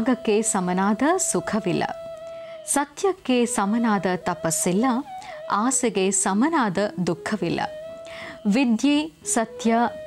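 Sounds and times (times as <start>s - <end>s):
woman speaking animatedly: 2.7s - 7.7s, 8.5s - 10.0s.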